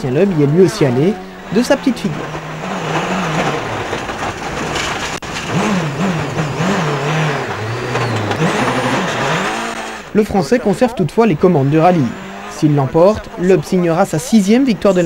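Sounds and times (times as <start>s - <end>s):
gravel and dust rushing: 0.0s - 15.0s
rally car engine revving: 0.0s - 15.0s.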